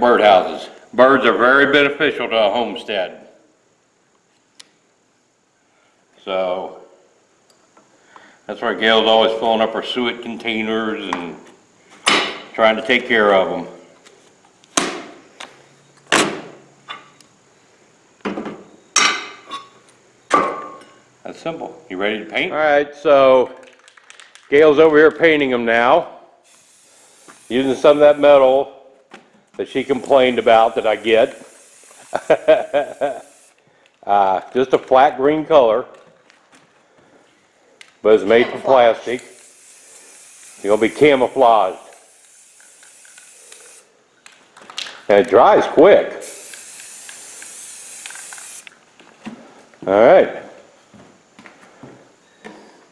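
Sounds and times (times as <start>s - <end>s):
aerosol spray paint hissing: 26.4s - 28.6s, 29.6s - 33.6s, 39.1s - 44.0s, 46.2s - 48.8s
spray can clicks: 39.2s - 40.6s, 41.8s - 43.9s, 46.2s - 48.8s.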